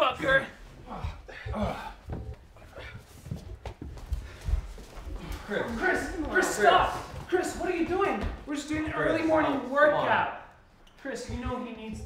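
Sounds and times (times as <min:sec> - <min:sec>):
dull irregular thumps: 0:00.0 - 0:09.6, 0:11.0 - 0:12.0.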